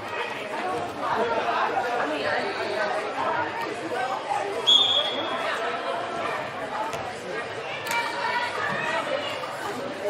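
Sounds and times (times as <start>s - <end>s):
chatter of many voices echoing: 0.0s - 10.0s.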